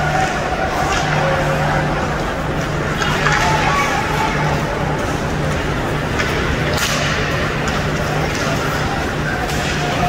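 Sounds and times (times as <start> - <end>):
low hum of ice rink: 0.0 - 10.0.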